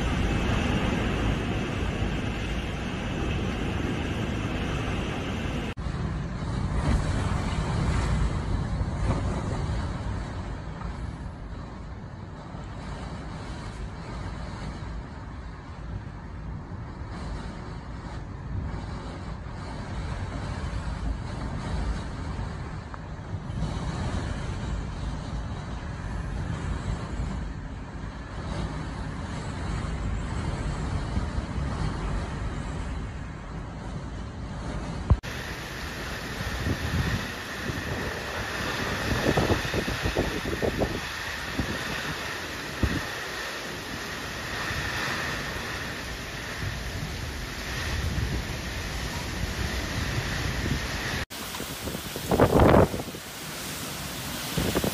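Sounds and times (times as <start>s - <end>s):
heavy rain: 0.0s - 5.8s, 35.1s - 54.9s
strong wind gusts: 0.0s - 54.9s
wind buffeting microphone: 0.0s - 54.9s.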